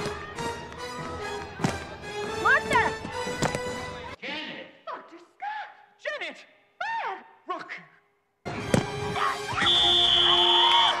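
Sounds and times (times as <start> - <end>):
music: 0.0 - 4.2, 8.4 - 11.0
referee's whistle blast: 9.5 - 11.0.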